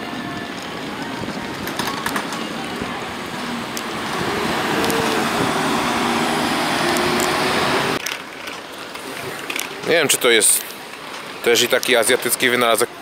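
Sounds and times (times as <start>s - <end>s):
street ambience: 0.0s - 13.0s
vehicle passing close by: 3.2s - 8.0s.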